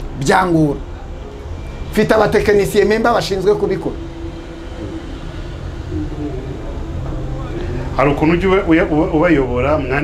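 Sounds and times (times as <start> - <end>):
low rumble: 0.9 - 10.0.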